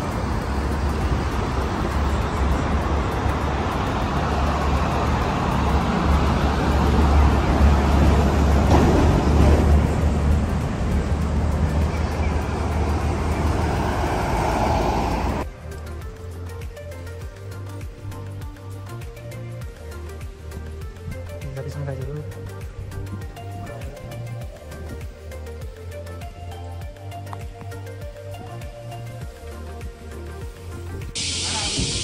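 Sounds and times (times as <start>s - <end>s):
road traffic rumbling: 0.0s - 32.0s.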